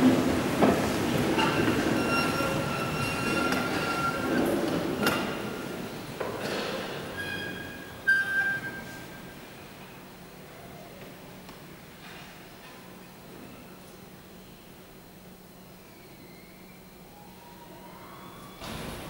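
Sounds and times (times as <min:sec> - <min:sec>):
long high squeaks: 0:01.4 - 0:04.4, 0:07.2 - 0:09.1.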